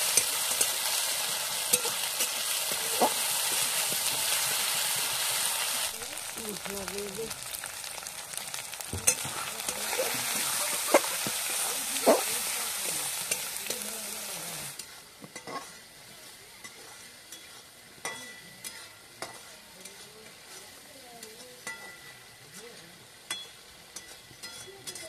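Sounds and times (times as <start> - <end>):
onions sizzling in oil: 0.0 - 25.0.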